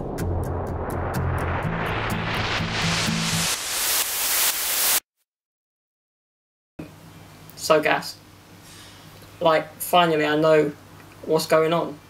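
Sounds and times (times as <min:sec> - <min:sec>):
white-noise swell: 0:00.0 - 0:05.0.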